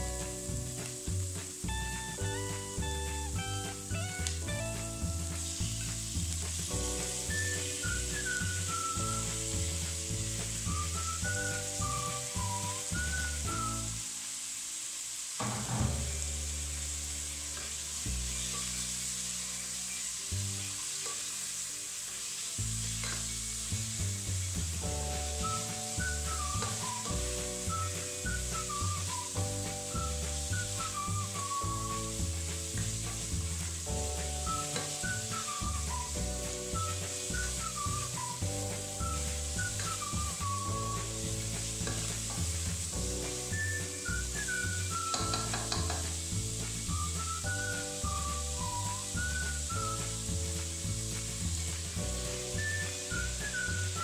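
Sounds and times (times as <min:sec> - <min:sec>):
instrumental background music: 0:00.0 - 0:14.3, 0:15.4 - 0:54.0
food sizzling in oil: 0:00.0 - 0:54.0.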